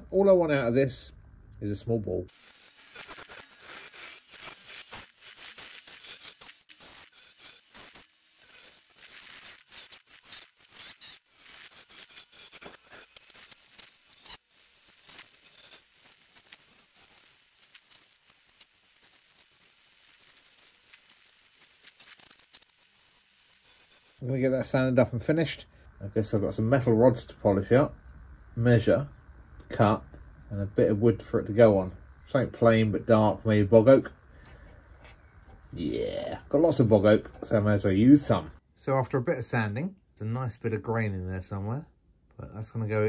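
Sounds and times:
wood lathe chisel scraping: 0:02.3 - 0:24.2
small clicks and ticks: 0:02.4 - 0:24.2.

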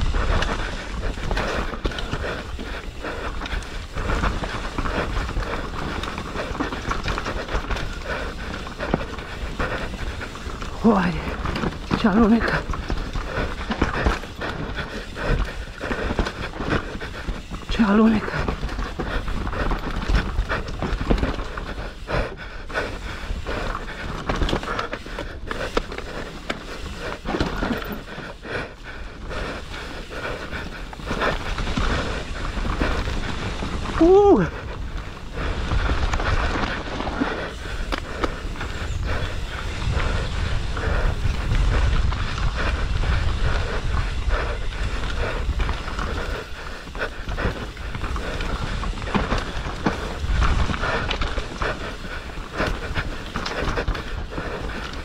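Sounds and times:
bike rattling over bumps: 0:00.0 - 0:55.0
rider breathing hard: 0:00.0 - 0:55.0
tyres on loose soil: 0:00.0 - 0:55.0
wind on microphone: 0:29.3 - 0:54.8.

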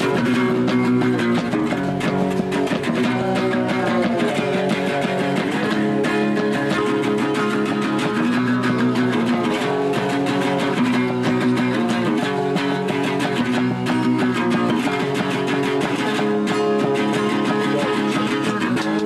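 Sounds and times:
acoustic guitar strumming: 0:00.0 - 0:19.0
electric guitar strumming: 0:00.0 - 0:19.0.

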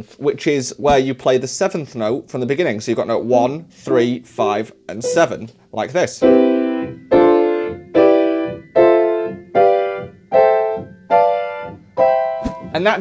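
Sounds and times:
piano chords: 0:04.9 - 0:05.5, 0:06.1 - 0:13.0.

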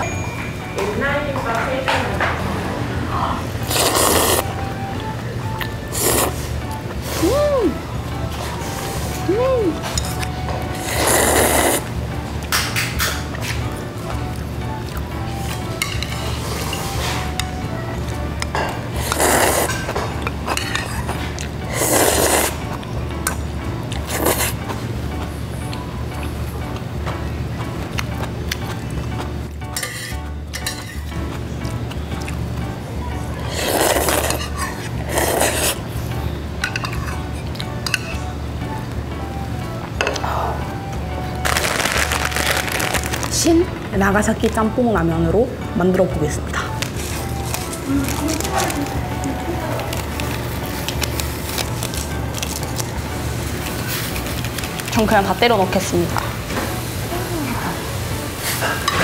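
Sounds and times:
background music with low pulse: 0:00.0 - 0:59.0
noodles being slurped: 0:03.6 - 0:04.5, 0:05.9 - 0:07.3, 0:10.0 - 0:11.9, 0:18.9 - 0:22.6, 0:24.0 - 0:24.6, 0:33.4 - 0:35.8, 0:41.4 - 0:43.4.

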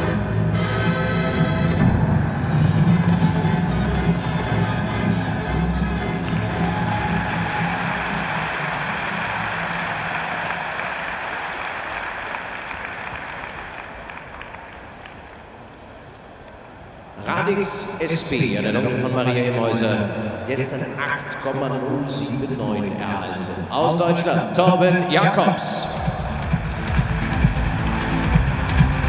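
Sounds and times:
music: 0:00.0 - 0:11.0, 0:25.8 - 0:29.0
arena crowd applauding: 0:03.0 - 0:16.7, 0:26.0 - 0:29.0.

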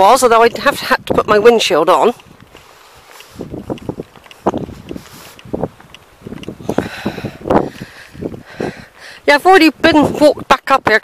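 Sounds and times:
footsteps on gravel: 0:00.0 - 0:10.4
wind buffeting microphone: 0:00.0 - 0:11.0.

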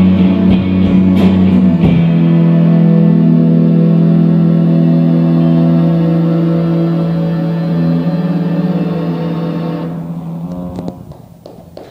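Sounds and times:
electric instruments droning: 0:00.0 - 0:11.9.

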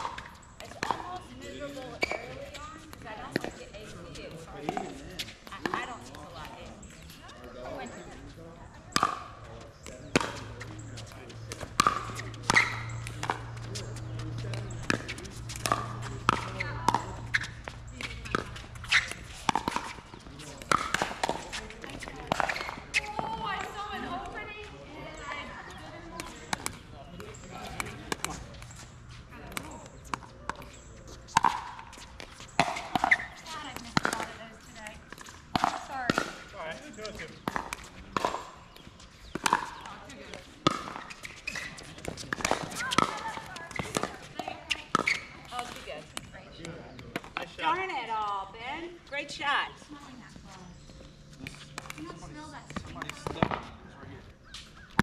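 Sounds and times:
ball bouncing on hard court: 0:00.0 - 0:06.8, 0:08.8 - 0:36.5, 0:37.1 - 0:46.3, 0:51.5 - 0:53.7
paddles hitting plastic ball: 0:11.4 - 0:24.4, 0:26.1 - 0:34.4, 0:37.1 - 0:47.5.

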